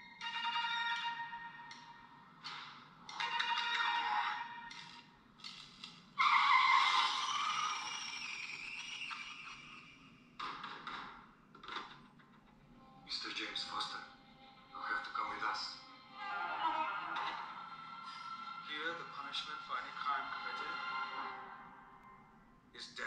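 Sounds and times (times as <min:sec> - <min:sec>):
dialogue: 0:12.4 - 0:22.2.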